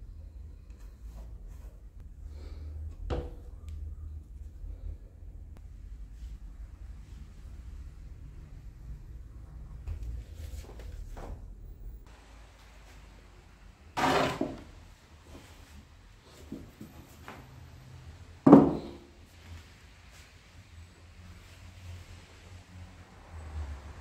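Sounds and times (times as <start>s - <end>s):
heavy wooden thump: 18.5s - 19.0s
wood knocking on workbench: 18.5s - 19.0s.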